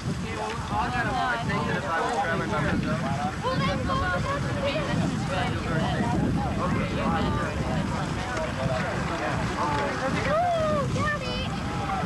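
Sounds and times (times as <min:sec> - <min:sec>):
wind rumbling on microphone: 0:00.0 - 0:12.0
people talking: 0:00.2 - 0:12.0.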